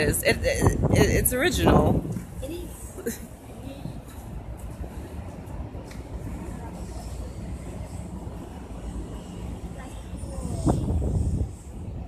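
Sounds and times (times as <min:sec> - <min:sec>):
low wind rumble on microphone: 0:00.0 - 0:12.0
voices: 0:00.0 - 0:12.0.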